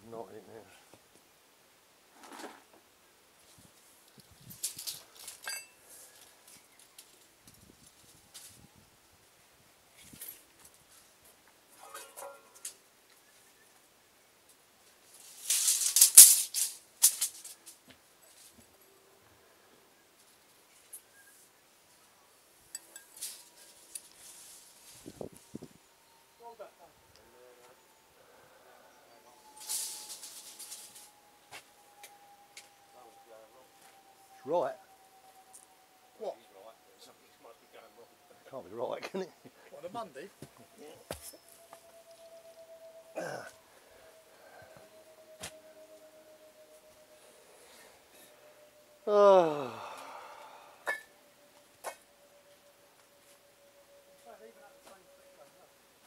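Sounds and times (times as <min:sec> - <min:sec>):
faint steady hum: 0:21.4 - 0:56.0.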